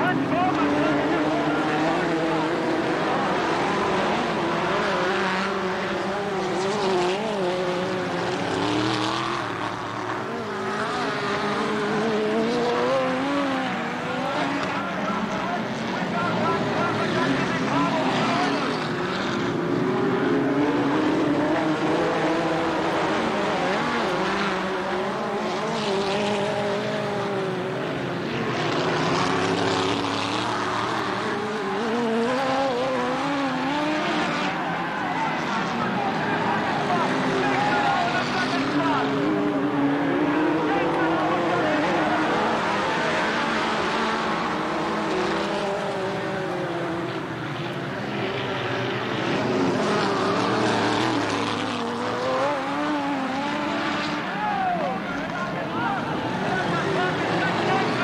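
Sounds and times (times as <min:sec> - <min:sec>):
race car engines: 0:00.0 - 0:58.0.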